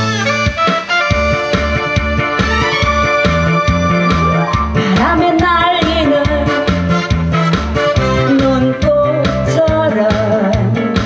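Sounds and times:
backing music with bass and beat: 0.0s - 11.0s
woman singing into microphone: 4.7s - 6.9s, 8.2s - 11.0s.

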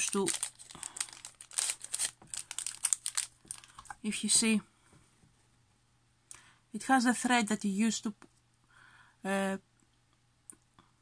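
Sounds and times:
plastic bag crinkling: 0.0s - 4.2s.

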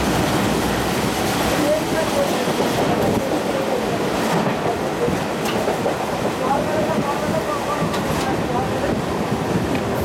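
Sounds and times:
train carriage rumble and rattle: 0.0s - 10.0s.

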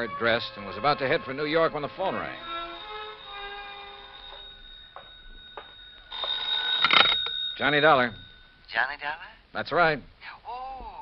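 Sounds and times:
held musical chord: 0.0s - 8.2s
telephone bell ringing: 2.2s - 8.6s.

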